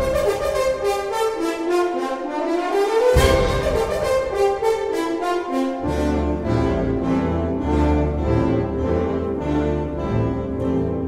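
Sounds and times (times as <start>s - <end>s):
brass holding chords: 0.0s - 11.0s
wind band playing: 0.0s - 11.0s.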